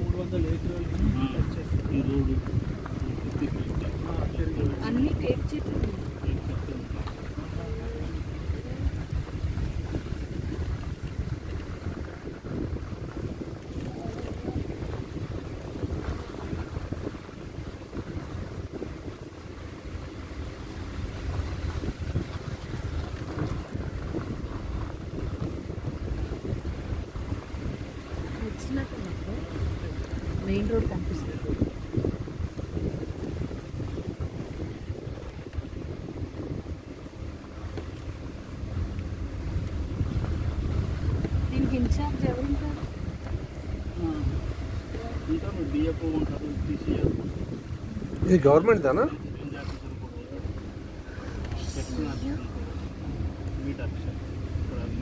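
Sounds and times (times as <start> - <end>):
vehicle rumble: 0.0 - 55.0
wind buffeting microphone: 0.0 - 55.0.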